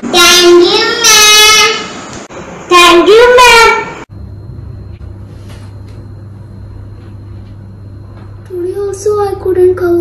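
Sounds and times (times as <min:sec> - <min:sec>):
high whine: 0:00.0 - 0:10.0
low hum: 0:04.0 - 0:10.0.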